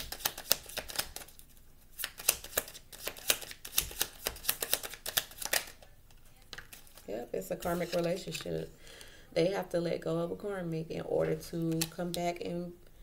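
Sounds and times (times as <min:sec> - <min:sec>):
cards being shuffled: 0:00.0 - 0:08.6.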